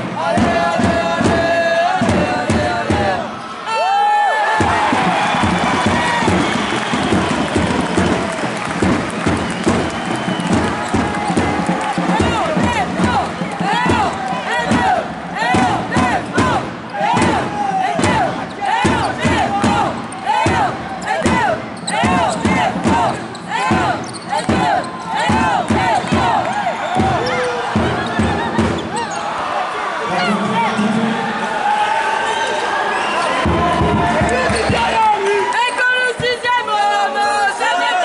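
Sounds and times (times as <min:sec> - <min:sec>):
crowd in a hall: 0:00.0 - 0:38.0
sneakers squeaking on court: 0:21.8 - 0:22.4, 0:23.3 - 0:25.2.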